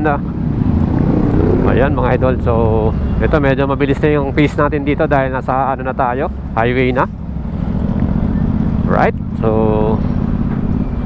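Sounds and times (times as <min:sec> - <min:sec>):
wind on microphone: 0:00.3 - 0:03.0.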